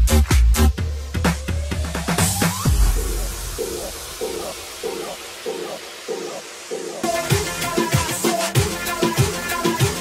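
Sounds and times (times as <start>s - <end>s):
repeating synth stab: 2.2s - 8.0s.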